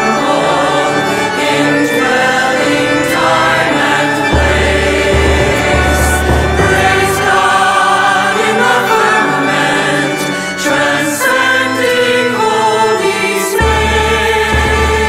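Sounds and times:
choir singing sustained notes: 0.0s - 15.0s
deep bass: 4.4s - 7.5s.

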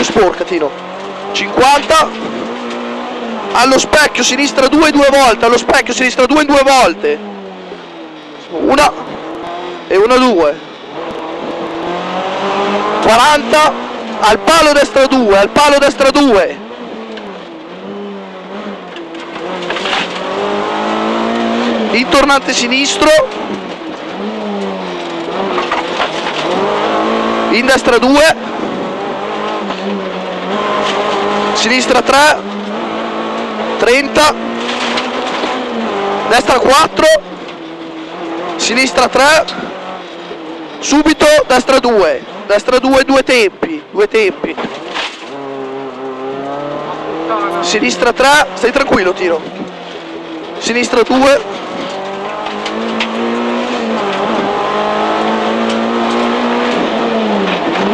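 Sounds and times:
rally car engine from inside cabin: 0.0s - 57.9s
car engine from inside cabin: 16.6s - 22.2s, 32.2s - 36.3s, 44.7s - 57.9s.

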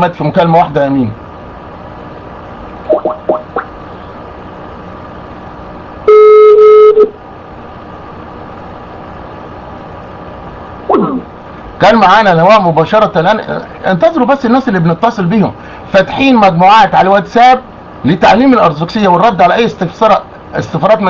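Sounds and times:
telephone line hiss: 6.0s - 7.2s
telephone tone: 6.1s - 7.2s.

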